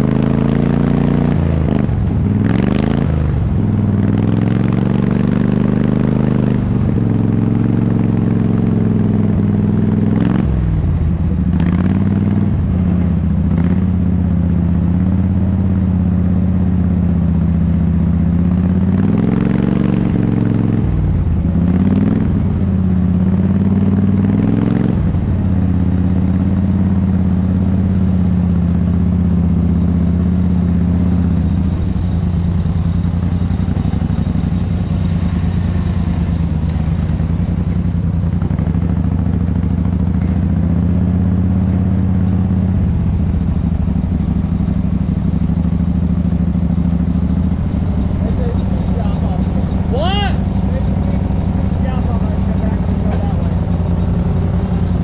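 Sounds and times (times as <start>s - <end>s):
tractor engine revving: 0.0s - 55.0s.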